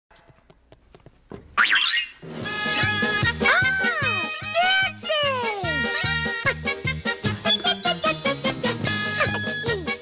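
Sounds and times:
comic spring boing effect: 0:01.6 - 0:02.2.

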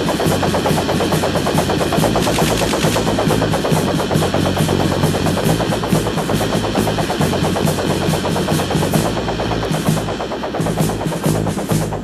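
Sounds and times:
rapid cymbal and drum strokes: 0:00.0 - 0:12.0.

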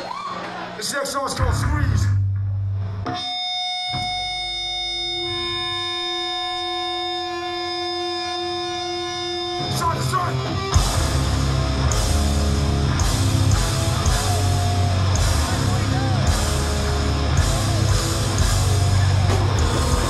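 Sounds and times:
punk band playing: 0:03.1 - 0:20.0.

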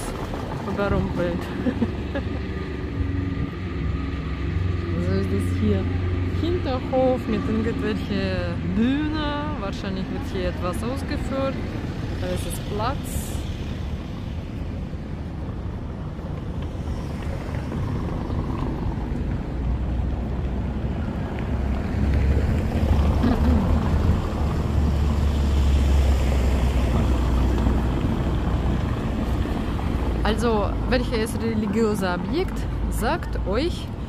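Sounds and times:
faint street ambience: 0:00.0 - 0:34.0
wind buffeting microphone: 0:00.0 - 0:34.0.

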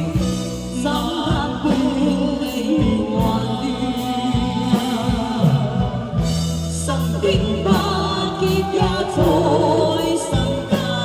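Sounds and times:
bass notes: 0:00.0 - 0:11.0.

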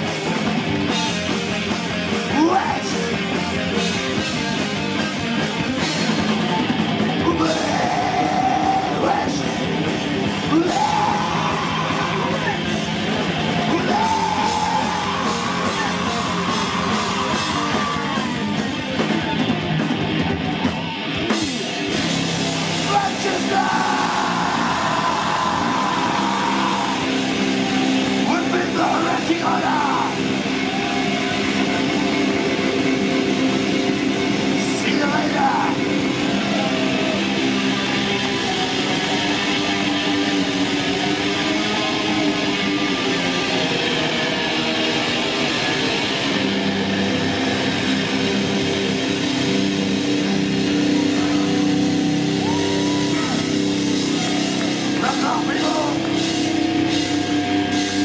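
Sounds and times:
distorted electric guitars: 0:00.0 - 0:58.0
heavy metal band playing live: 0:00.0 - 0:58.0.

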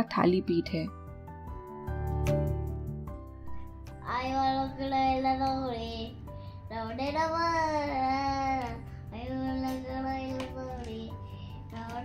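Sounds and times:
background music: 0:00.0 - 0:12.0
child singing: 0:04.0 - 0:12.0.

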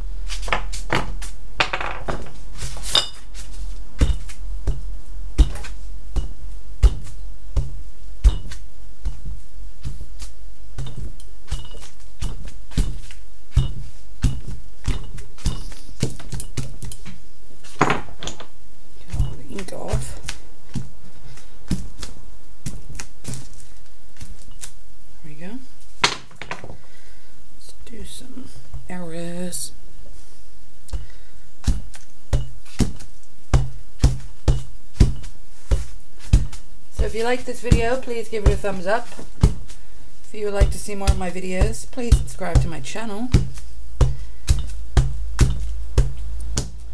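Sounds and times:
steady low hum: 0:00.0 - 0:46.9
rubber stamps thumping: 0:31.6 - 0:39.8, 0:40.6 - 0:46.9.

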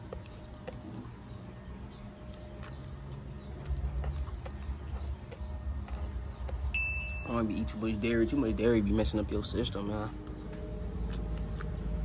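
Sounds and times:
close-up chewing: 0:00.0 - 0:12.0.

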